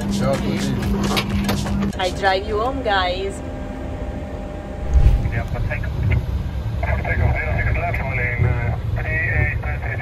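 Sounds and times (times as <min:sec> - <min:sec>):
engine rumble inside vehicle: 0:00.0 - 0:10.0.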